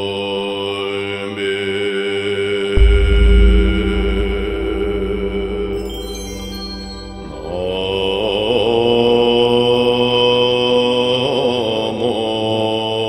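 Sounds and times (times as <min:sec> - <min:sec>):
steady high tone: 0:02.8 - 0:10.3
voice chanting long notes: 0:02.8 - 0:11.6.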